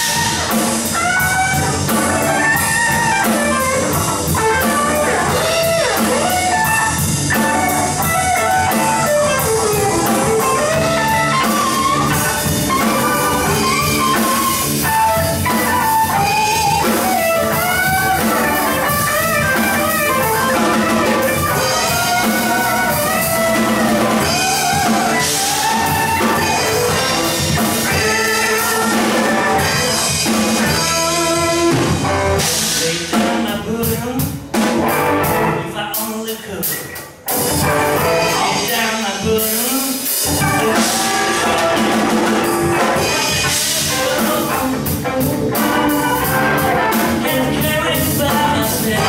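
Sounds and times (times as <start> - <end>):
lead guitar with bending notes: 0.0 - 33.0, 34.4 - 35.8, 36.7 - 39.1, 40.2 - 49.0
bass: 0.0 - 49.0
drum kit: 0.0 - 49.0.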